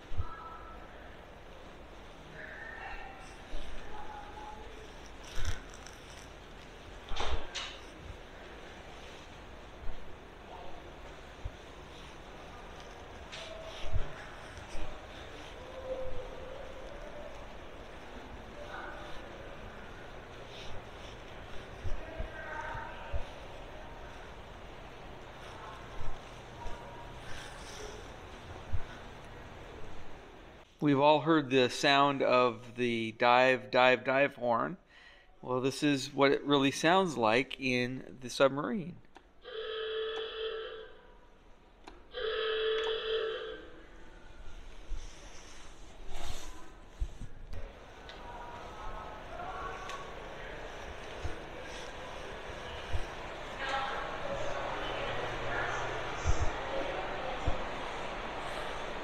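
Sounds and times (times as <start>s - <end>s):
faint distant voices: 0.0s - 30.7s, 43.6s - 59.0s
low hum and hiss: 0.0s - 59.0s.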